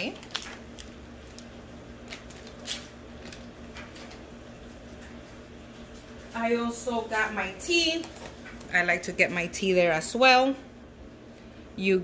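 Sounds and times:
plastic pouch crinkling: 0:00.0 - 0:04.3
faint steady hum: 0:00.0 - 0:12.0.

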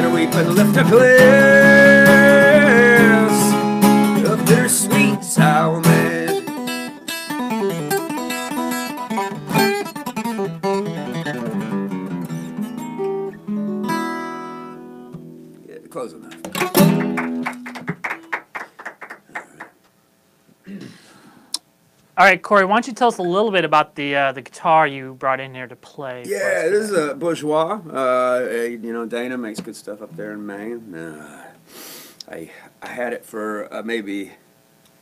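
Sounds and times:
acoustic guitar picking and strumming: 0:00.0 - 0:18.5.

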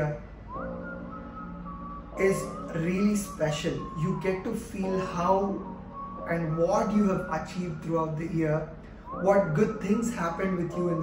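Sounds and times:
whistle-like lead tone: 0:00.0 - 0:11.0.

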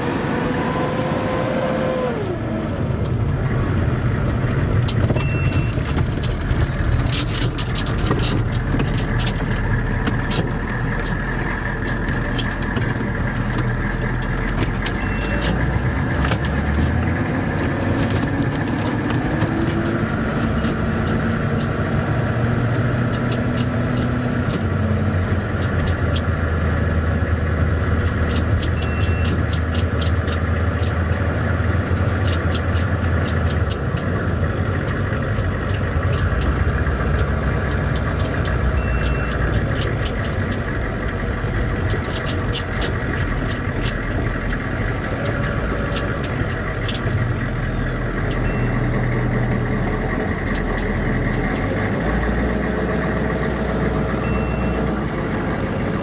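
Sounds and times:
vehicle engine running: 0:00.0 - 0:56.0
clicks and rattles: 0:04.5 - 0:22.0, 0:22.6 - 0:24.8, 0:25.4 - 0:54.8
short high beeps: 0:05.2 - 0:05.8, 0:15.0 - 0:15.6, 0:38.8 - 0:39.4, 0:48.4 - 0:48.9, 0:54.2 - 0:54.9.

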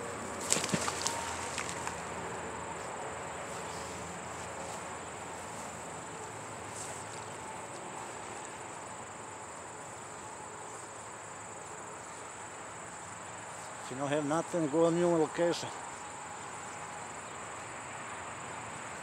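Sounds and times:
insects trilling: 0:00.0 - 0:19.0.

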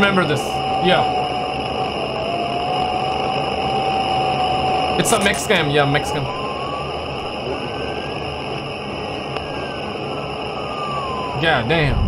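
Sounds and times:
eerie ambient drone music: 0:00.0 - 0:12.0.

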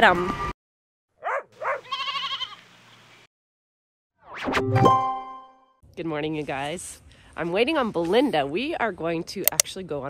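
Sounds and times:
sheep bleat: 0:01.6 - 0:02.6.

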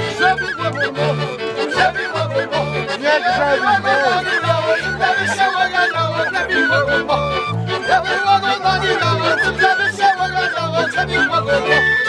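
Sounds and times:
accordion: 0:00.0 - 0:12.0
double bass: 0:00.0 - 0:12.0
fiddles: 0:00.0 - 0:12.0
wooden flute melody: 0:00.0 - 0:12.0.

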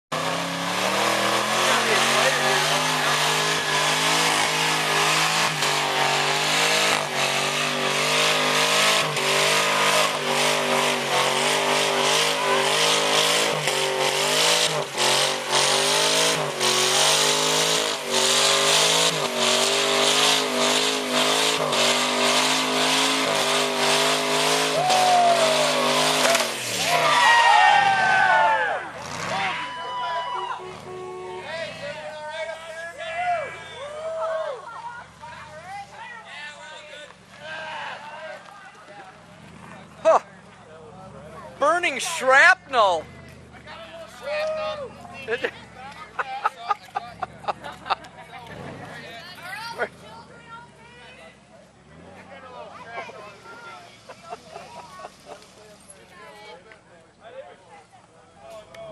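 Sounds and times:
engine revving high: 0:00.1 - 0:29.7
tire squealing on pavement: 0:00.1 - 0:56.6
people whooping and cheering: 0:24.7 - 0:30.9, 0:33.0 - 0:35.0, 0:44.1 - 0:45.0.

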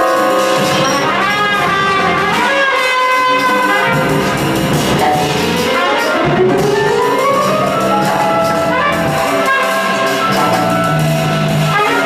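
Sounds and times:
brass horn melody: 0:00.0 - 0:12.0
live jazz band: 0:00.0 - 0:12.0.

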